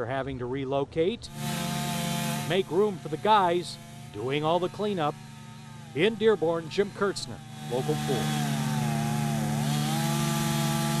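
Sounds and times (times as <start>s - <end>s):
chainsaw cutting tree trunk: 1.3s - 11.0s.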